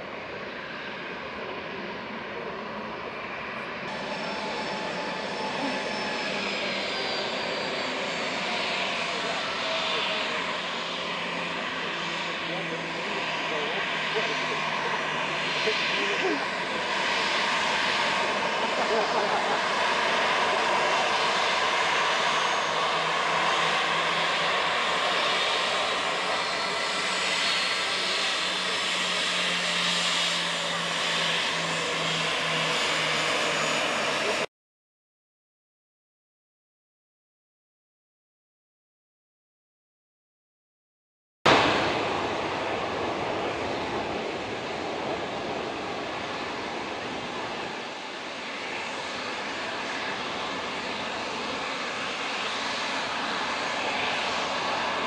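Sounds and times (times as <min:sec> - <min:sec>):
jet engines whining: 0:00.1 - 0:34.5, 0:41.5 - 0:55.0.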